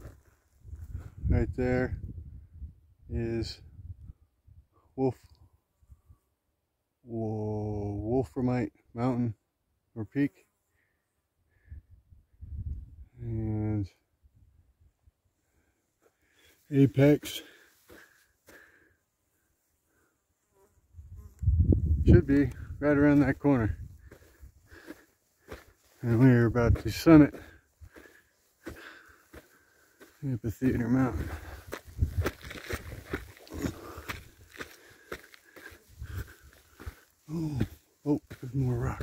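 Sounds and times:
footsteps crunching on gritty rock: 0.0s - 1.0s, 22.2s - 39.0s.

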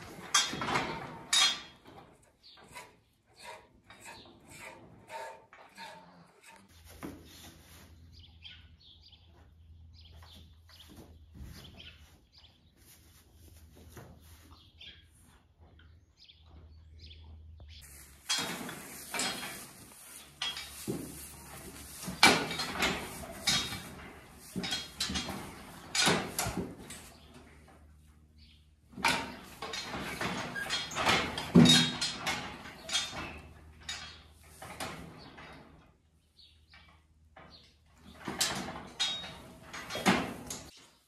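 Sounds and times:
rustling and knocking in straw: 17.8s - 27.6s.

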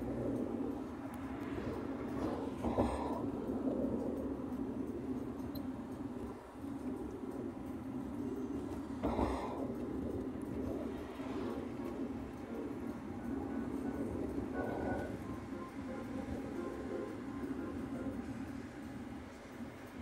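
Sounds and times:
car road noise inside cabin: 0.0s - 20.0s.

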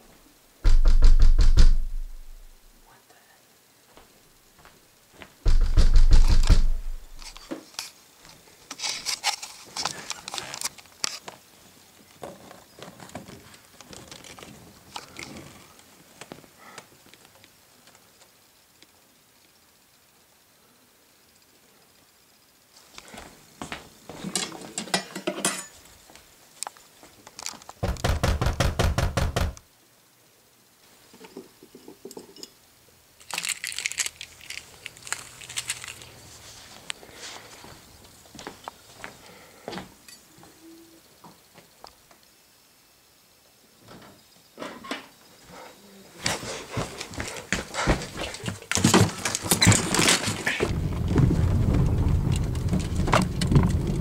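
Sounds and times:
loud knocking on a door: 0.6s - 2.4s, 5.5s - 7.2s, 27.8s - 29.6s.

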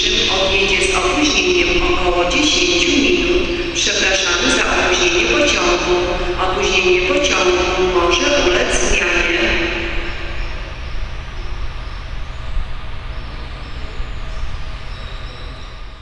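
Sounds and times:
echoing public address announcement: 0.0s - 16.0s
low rumble and hiss: 0.0s - 16.0s.

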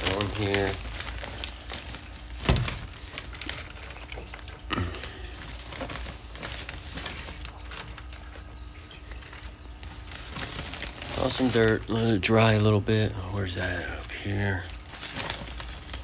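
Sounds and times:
soil rustling and pattering: 0.0s - 4.7s, 5.4s - 12.3s
faint steady hum: 0.0s - 16.0s.

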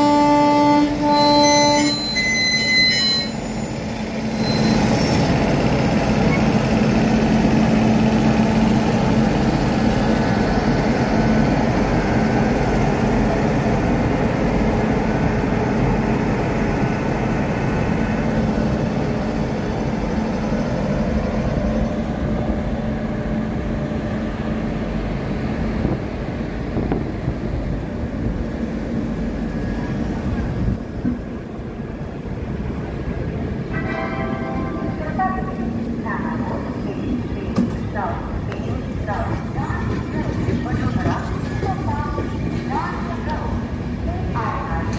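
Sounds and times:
locomotive hum: 0.0s - 44.9s
train wheels rumbling on rails: 0.0s - 44.9s.

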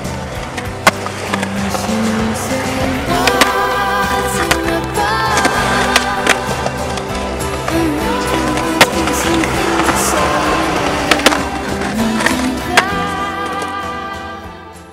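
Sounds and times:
skateboard clacks: 0.0s - 13.7s
skateboard wheels rolling and grinding: 0.0s - 14.4s
background music: 0.0s - 14.9s.

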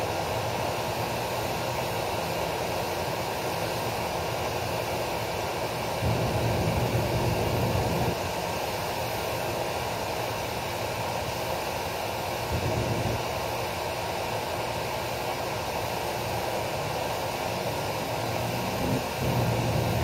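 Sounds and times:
machinery drone: 16.7s - 20.0s.

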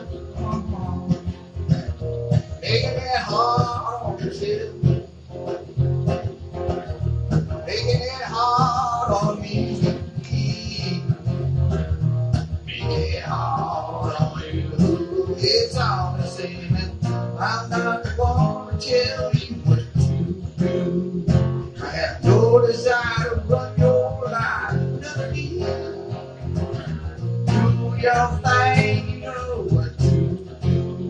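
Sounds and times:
acoustic guitars strumming: 0.0s - 31.0s.

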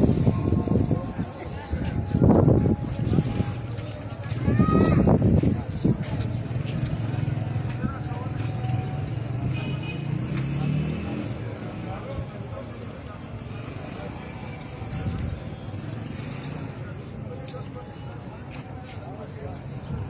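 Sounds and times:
faint voices: 0.0s - 20.0s
passing traffic rumble: 0.0s - 20.0s.

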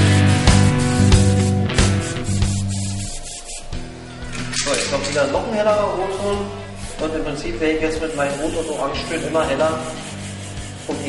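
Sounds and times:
airbrush spraying hiss: 0.0s - 4.0s, 5.7s - 11.0s
background music: 0.0s - 11.0s.

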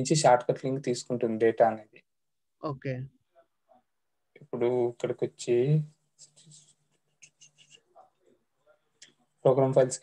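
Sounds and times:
faint scratchy sounds: 0.0s - 10.0s.

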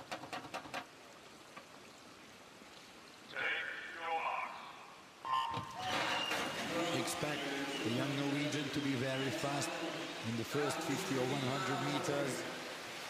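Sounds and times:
arena crowd noise: 3.3s - 13.0s.

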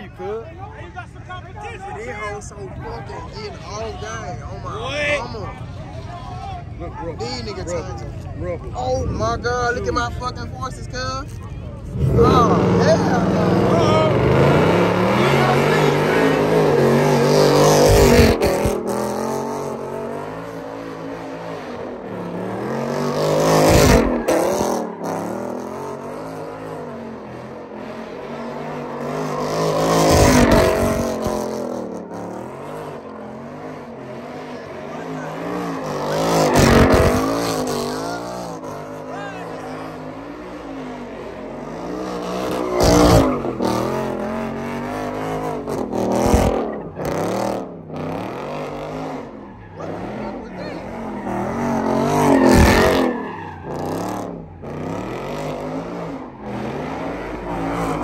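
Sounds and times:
tires spinning and squealing: 1.2s - 58.0s
car engine at high revs: 6.9s - 58.0s.

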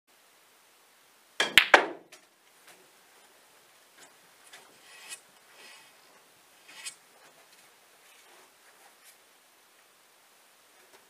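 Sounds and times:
snooker balls clicking: 1.4s - 2.1s.

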